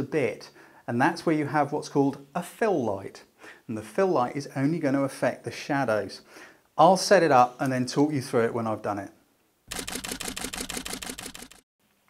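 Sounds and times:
rapid camera shutter clicks: 9.7 - 11.6.

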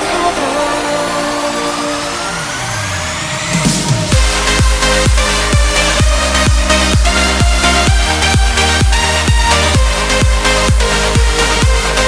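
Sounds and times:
held synth chords: 0.0 - 12.0
rising synth sweep: 0.0 - 12.0.

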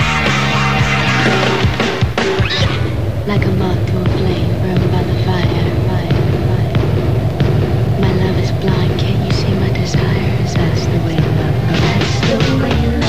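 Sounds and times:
music with steady beat and bass: 0.0 - 3.0, 4.1 - 13.0
voice over music: 0.0 - 13.0.

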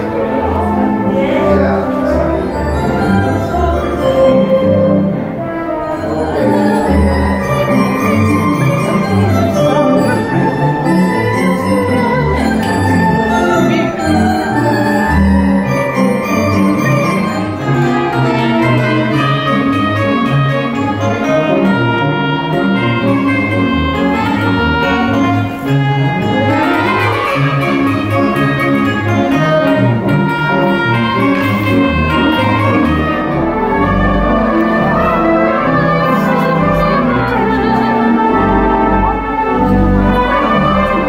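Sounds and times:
theatre organ playing: 0.0 - 41.0.

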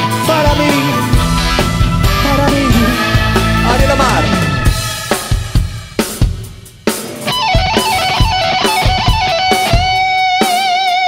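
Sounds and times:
drum kit playing: 0.0 - 10.9
cymbal crashes: 0.7 - 10.0.

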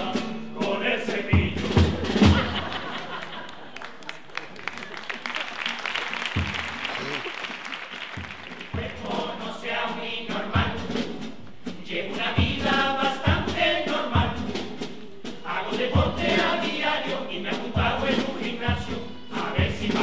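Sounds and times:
men's chorus singing: 0.0 - 2.6, 8.5 - 20.0
audience applause: 2.6 - 9.0
bass drum beating: 6.4 - 6.9.

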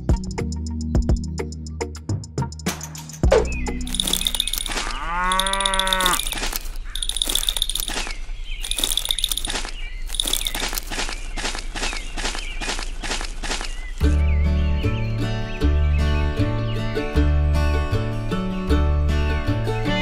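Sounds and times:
quick pops and clicks: 3.3 - 14.0
moo-like call: 4.7 - 6.4.

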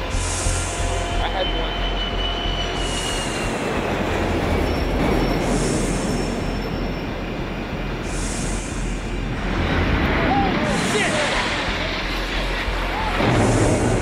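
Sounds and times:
high engine whine: 0.0 - 14.0
jet airliner roaring overhead: 0.0 - 14.0.

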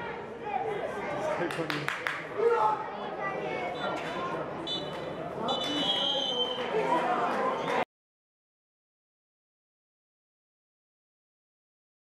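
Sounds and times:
stadium noise: 0.0 - 7.9
referee's whistle blasts: 4.6 - 6.7.

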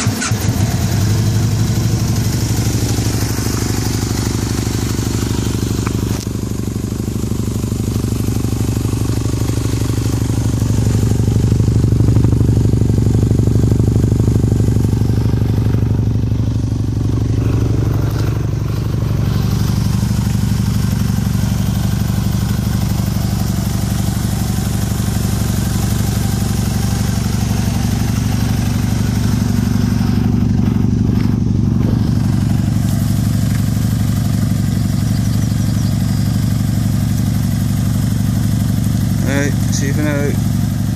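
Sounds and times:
motorbike engine idling: 0.0 - 40.9.

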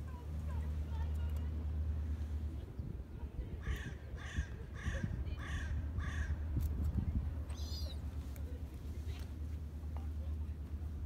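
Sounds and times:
steady low rumble: 0.0 - 11.0
crow cawing: 3.6 - 6.4.

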